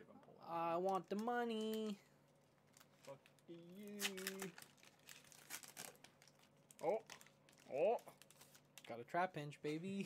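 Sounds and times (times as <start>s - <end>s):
foil wrapper crinkling and tearing: 2.5s - 9.0s.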